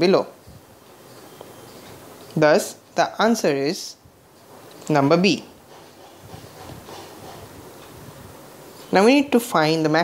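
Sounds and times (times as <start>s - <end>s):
person speaking: 0.0s - 0.4s, 2.3s - 4.0s, 4.8s - 5.6s, 8.9s - 10.0s
microphone hiss and buzz: 0.0s - 10.0s.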